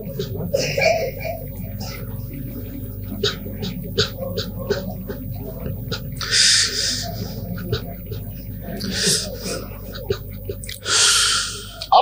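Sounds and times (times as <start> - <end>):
man chanting recitation: 0.0 - 12.0.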